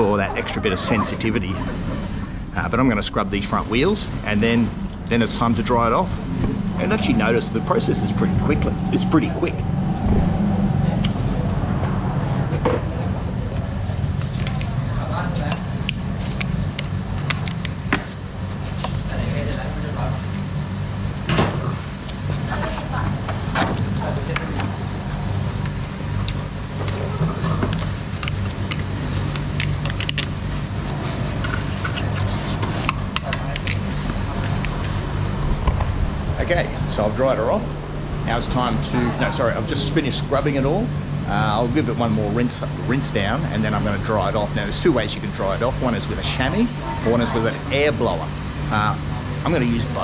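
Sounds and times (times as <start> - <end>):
steady low hum: 0.0 - 50.0
brush scrubbing wet tyre: 13.8 - 20.0, 25.7 - 35.4.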